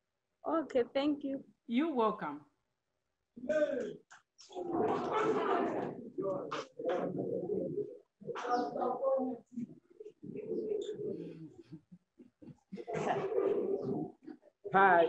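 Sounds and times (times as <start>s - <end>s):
indistinct voices in a hall: 3.4s - 15.0s.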